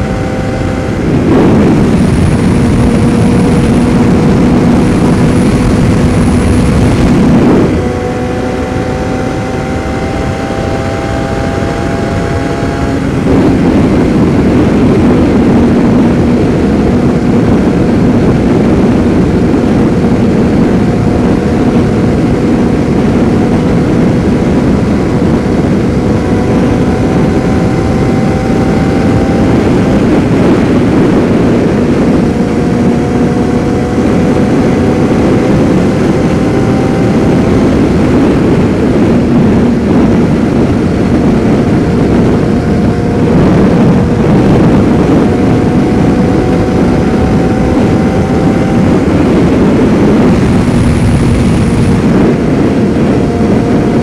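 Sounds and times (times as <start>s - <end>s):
motorcycle engine running: 0.0s - 54.0s
wind noise: 0.0s - 54.0s.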